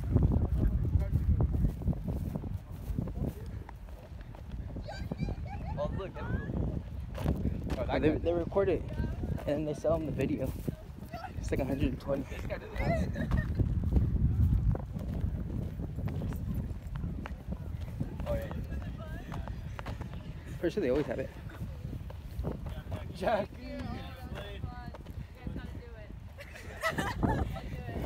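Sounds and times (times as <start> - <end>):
footsteps crunching on dirt: 0.0 - 5.4, 6.0 - 28.0
steady low rumble: 5.4 - 28.0.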